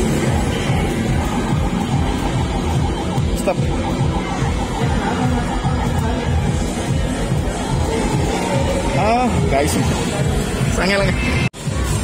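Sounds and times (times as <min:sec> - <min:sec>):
short repeating electronic notes: 0:00.0 - 0:10.8
game machine music with beat: 0:00.0 - 0:12.0.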